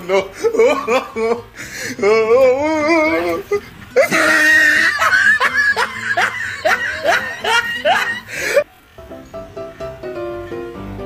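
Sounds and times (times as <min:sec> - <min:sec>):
person laughing: 0:00.0 - 0:08.6.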